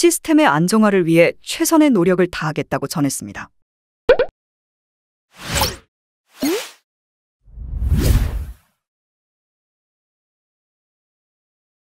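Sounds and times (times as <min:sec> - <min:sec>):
whoosh sound effect: 0:07.5 - 0:08.6.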